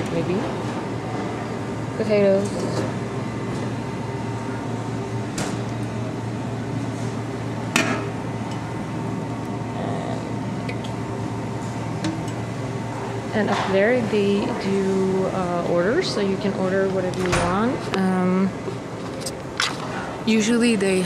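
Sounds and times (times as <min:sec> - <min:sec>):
ventilation hum: 0:00.0 - 0:21.0.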